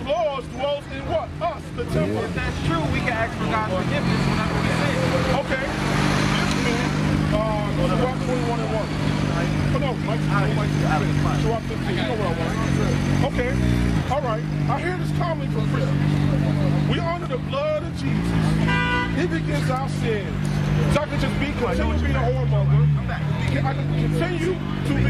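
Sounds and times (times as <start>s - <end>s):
people talking: 0.0s - 25.0s
vehicle engine hum: 0.0s - 25.0s.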